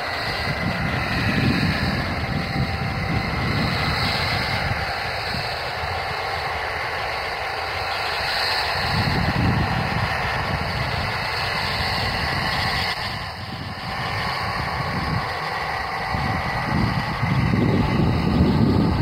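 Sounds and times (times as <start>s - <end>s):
jet engines taxiing: 0.0s - 19.0s
wind buffeting microphone: 0.0s - 19.0s.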